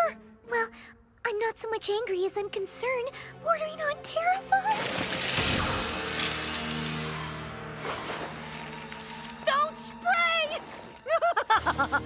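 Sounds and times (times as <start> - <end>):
background music: 0.0 - 12.0
spray can hissing: 5.2 - 7.5.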